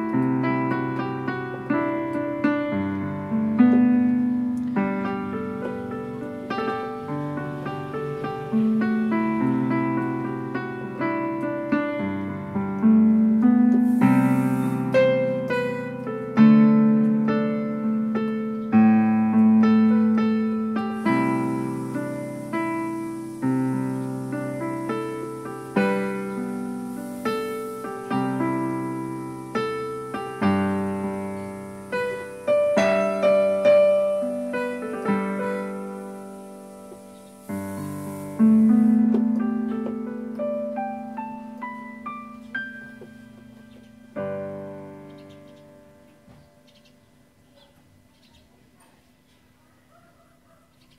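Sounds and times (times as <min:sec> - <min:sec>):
electronic keyboard piano melody: 0:00.0 - 0:48.1.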